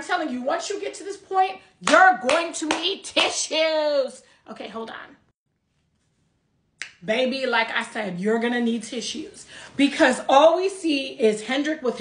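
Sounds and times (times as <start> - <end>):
finger snap: 6.8 - 7.0.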